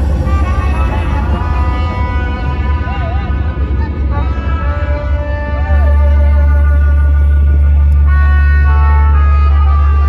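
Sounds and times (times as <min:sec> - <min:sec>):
heavy bass: 0:00.0 - 0:10.0
horn-like melody: 0:00.0 - 0:10.0.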